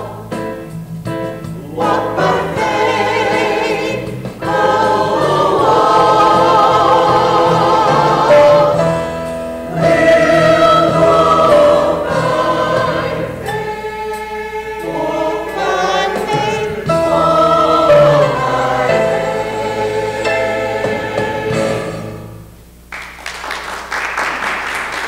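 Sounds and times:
mixed choir singing: 0.0s - 0.4s, 1.6s - 22.3s.

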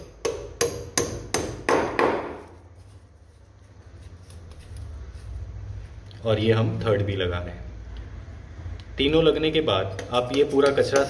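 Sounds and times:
hammer strikes on ceramic tile: 0.0s - 2.6s, 9.9s - 11.0s.

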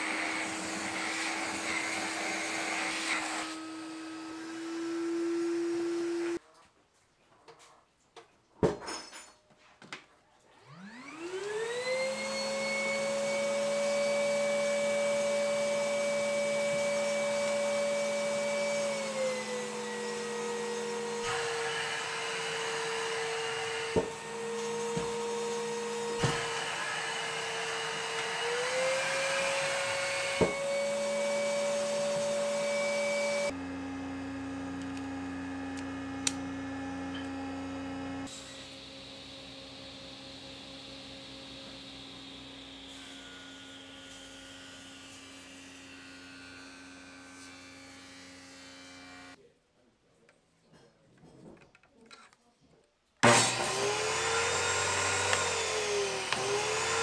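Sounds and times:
shop vacuum motor whining: 0.0s - 6.4s, 10.7s - 43.2s, 53.2s - 57.0s.

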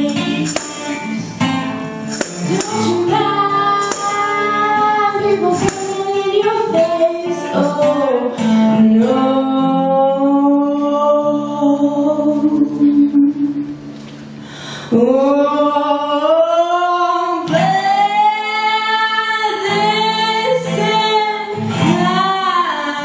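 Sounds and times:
electric guitar: 0.0s - 23.0s
voices singing in harmony: 2.4s - 13.7s.

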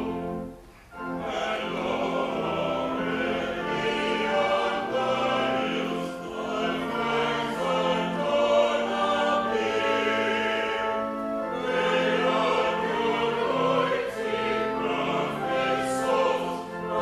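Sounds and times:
church choir singing: 0.0s - 17.0s
organ chords: 0.0s - 17.0s.

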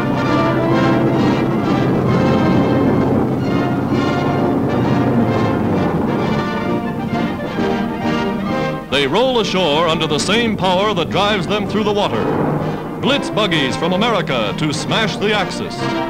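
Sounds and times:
orchestral music with brass: 0.0s - 16.0s.

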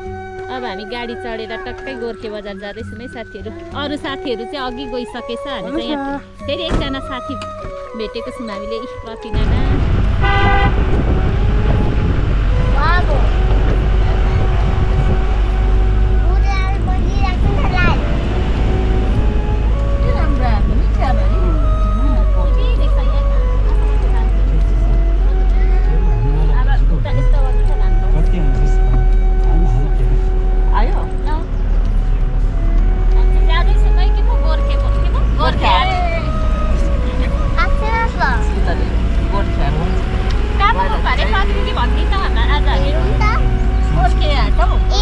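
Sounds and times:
background music sustained notes: 0.0s - 45.0s
car engine and road rumble: 0.0s - 45.0s
people's voices: 0.0s - 45.0s.

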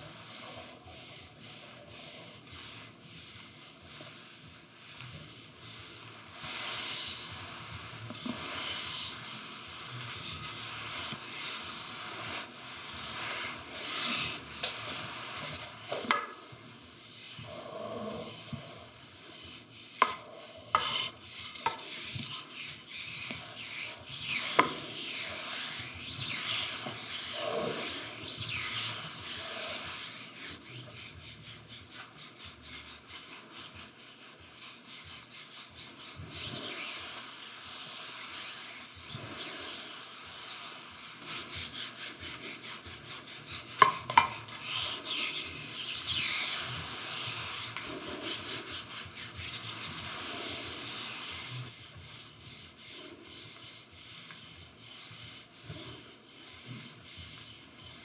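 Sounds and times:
massage sticks rubbing on body: 0.0s - 58.0s.

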